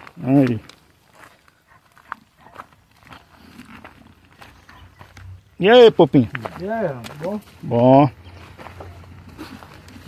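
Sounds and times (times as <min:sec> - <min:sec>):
light steps: 0:00.0 - 0:10.0.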